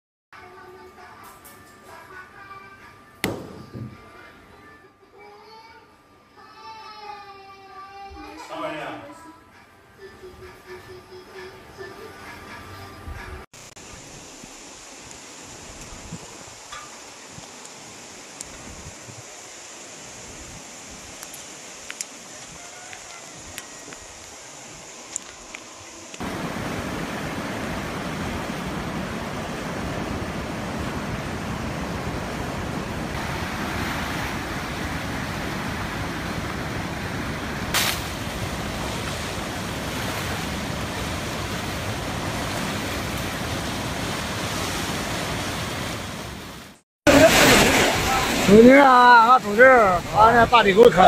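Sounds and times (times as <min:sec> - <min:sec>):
floodwater rushing: 0:26.2 - 0:51.0
heavy rain: 0:26.2 - 0:51.0.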